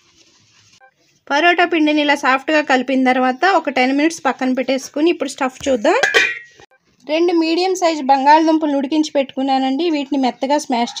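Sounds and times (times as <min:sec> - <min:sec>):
woman narrating: 0:01.2 - 0:06.1, 0:07.0 - 0:11.0.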